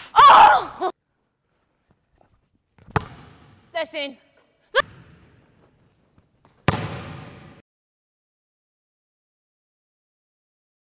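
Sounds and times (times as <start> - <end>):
basketball slammed on gym floor: 6.6 - 7.6.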